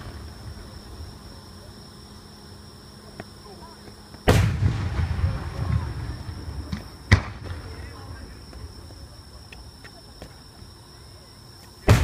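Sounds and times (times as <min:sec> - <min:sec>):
firework bang with rolling echo: 0:04.2 - 0:09.0
faint firework cracks: 0:04.2 - 0:10.4.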